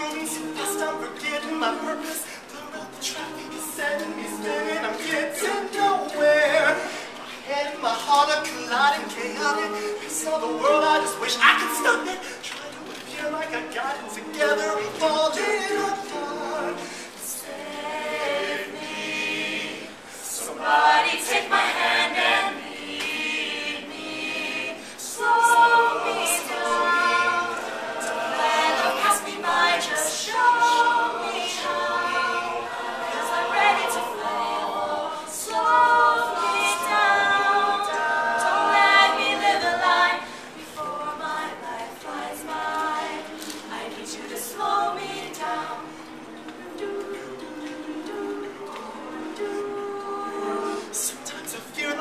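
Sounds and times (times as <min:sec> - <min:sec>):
a cappella group singing: 0:00.0 - 0:52.0.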